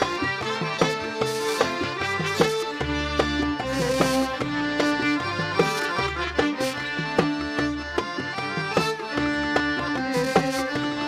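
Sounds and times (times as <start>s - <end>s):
percussion strikes: 0.0s - 11.0s
sustained melodic lines: 0.0s - 11.0s.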